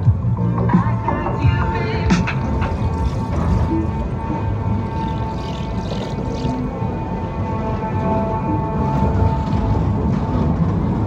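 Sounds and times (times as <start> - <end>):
loud fairground music: 0.0 - 11.0
rumble of coaster ride: 0.0 - 11.0.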